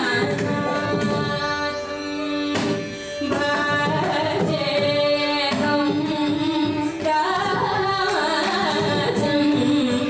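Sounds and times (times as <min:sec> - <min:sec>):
mridangam drum: 0:00.0 - 0:10.0
violin: 0:00.0 - 0:10.0.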